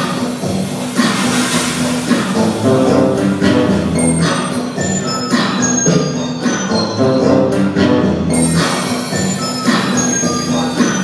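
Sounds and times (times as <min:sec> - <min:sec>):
acoustic guitar: 0:00.0 - 0:11.0
cymbals washing: 0:00.0 - 0:11.0
drum kit beat: 0:00.0 - 0:11.0
live band music: 0:00.2 - 0:11.0.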